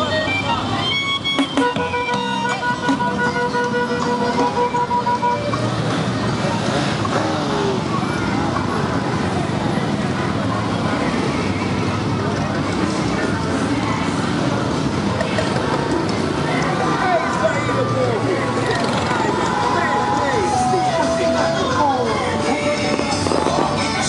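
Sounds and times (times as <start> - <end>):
motorcycles and cars passing: 0.0 - 24.0
voices: 0.0 - 24.0.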